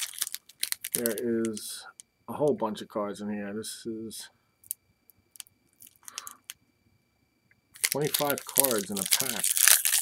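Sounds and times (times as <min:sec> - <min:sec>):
foil wrapper crinkling: 0:00.0 - 0:01.6, 0:05.8 - 0:06.5, 0:07.8 - 0:10.0.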